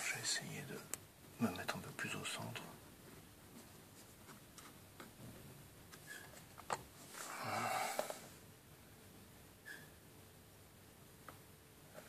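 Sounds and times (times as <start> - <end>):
breathy exhale: 7.2 - 8.3.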